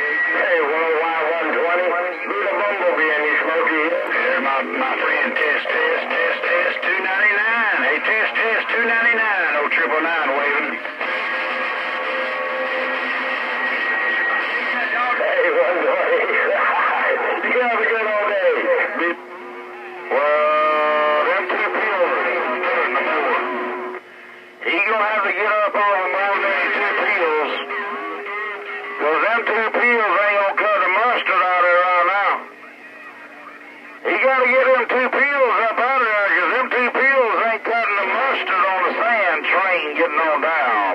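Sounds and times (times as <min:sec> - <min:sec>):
garbled overlapping radio voices: 0:00.0 - 0:40.9.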